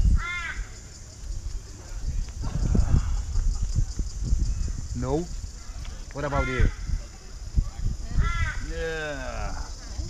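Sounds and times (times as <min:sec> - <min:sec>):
crow cawing: 0:00.2 - 0:00.8, 0:05.6 - 0:07.0, 0:08.1 - 0:09.5.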